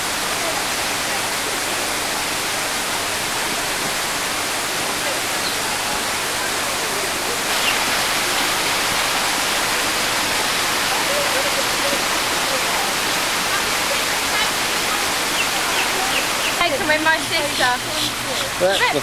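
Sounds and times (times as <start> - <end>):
faint voices: 0.0 - 19.0
falling water rushing: 0.0 - 19.0.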